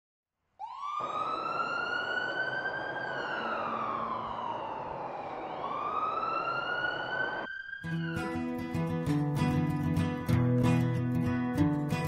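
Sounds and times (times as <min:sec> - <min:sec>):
emergency siren wailing: 0:00.6 - 0:09.0.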